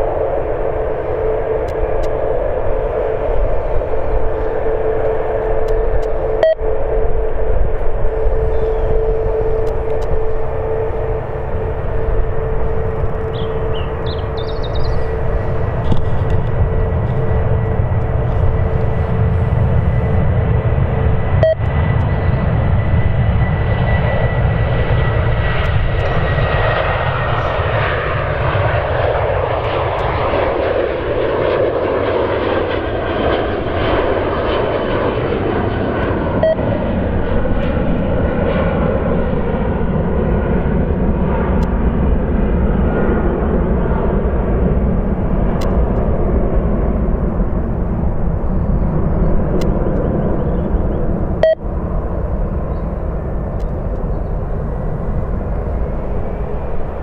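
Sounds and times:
high engine whine: 0:00.0 - 0:57.0
jet engines roaring: 0:00.0 - 0:57.0.

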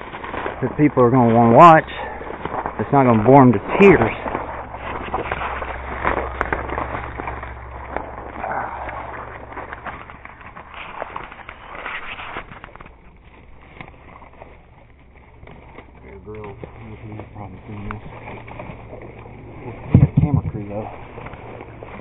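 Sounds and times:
footsteps crunching through dry leaves: 0:00.0 - 0:22.0.

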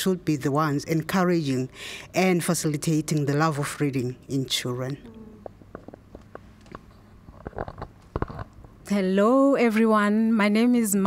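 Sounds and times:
microphone handling bumps and rubs: 0:05.4 - 0:08.8.

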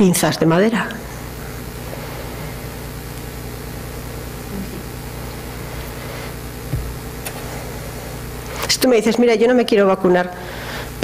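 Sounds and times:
low hum with hiss: 0:00.0 - 0:11.0
soft thump: 0:06.7 - 0:07.0.

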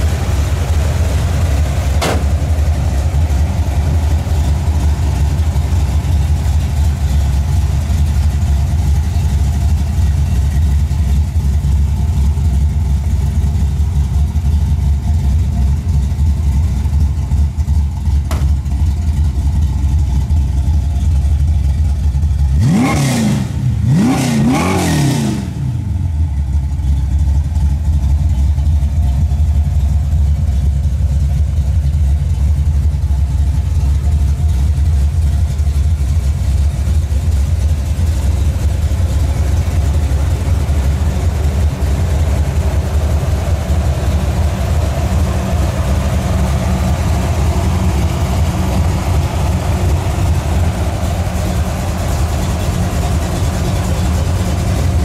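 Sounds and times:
car engine idling: 0:00.0 - 0:55.0
car engine revving: 0:22.5 - 0:26.2, 0:37.0 - 0:55.0.

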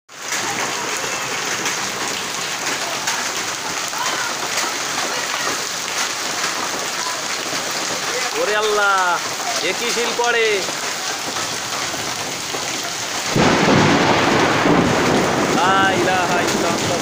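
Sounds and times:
heavy rain hissing: 0:00.1 - 0:17.0
hailstones striking: 0:00.2 - 0:17.0.

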